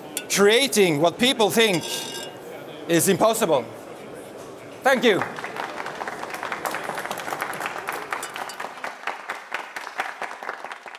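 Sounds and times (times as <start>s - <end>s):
audience applauding: 5.2s - 10.9s.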